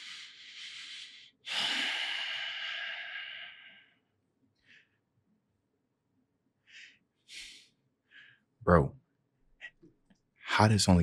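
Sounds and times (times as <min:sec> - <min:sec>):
man breathing out hard: 0:00.0 - 0:04.0.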